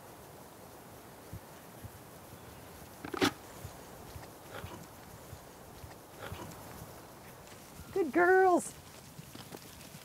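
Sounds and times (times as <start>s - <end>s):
sheep footsteps and shuffling: 0.0s - 10.0s.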